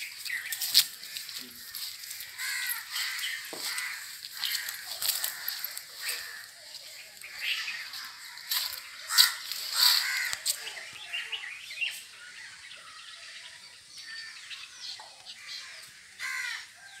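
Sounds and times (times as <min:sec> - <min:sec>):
crow-like caws: 0:01.0 - 0:06.5, 0:07.5 - 0:10.6, 0:15.4 - 0:16.8.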